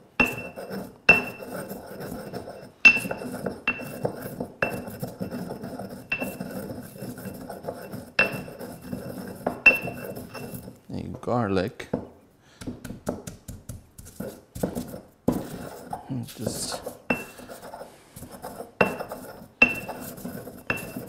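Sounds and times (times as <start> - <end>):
stone pestle knocking in mortar: 0.2 - 1.4, 2.9 - 5.3, 7.6 - 8.6, 9.4 - 10.6, 11.9 - 15.7, 18.8 - 21.0.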